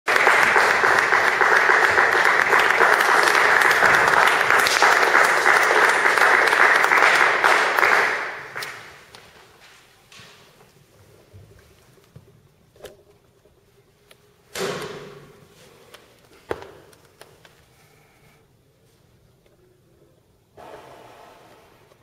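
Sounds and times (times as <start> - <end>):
audience applauding: 0.0 - 9.1.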